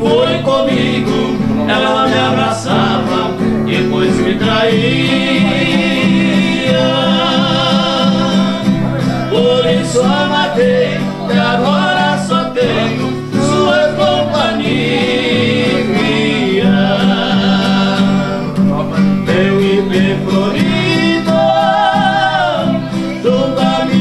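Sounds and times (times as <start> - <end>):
men singing in harmony: 0.0 - 24.0
strummed acoustic guitars: 0.0 - 24.0.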